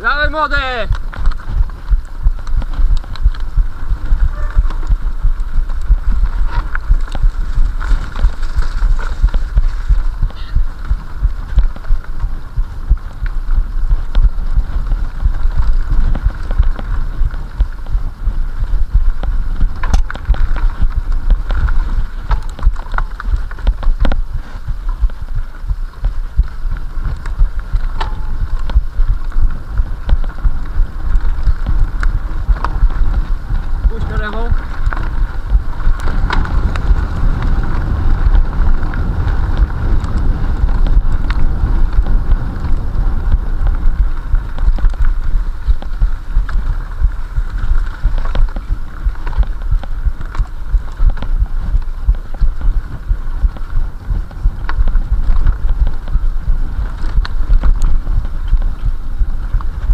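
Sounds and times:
bike rattling over bumps: 0.0 - 59.9
bike riding rumble: 0.0 - 59.9
wind buffeting microphone: 0.0 - 59.9.

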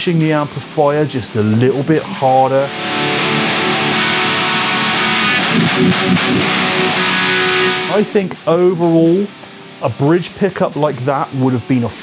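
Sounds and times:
distorted electric guitar metal riff: 2.0 - 9.6.

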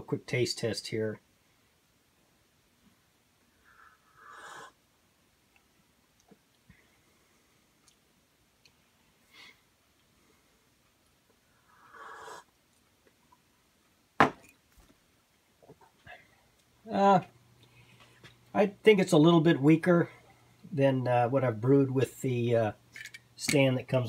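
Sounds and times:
mug set down on bench: 14.2 - 14.5.

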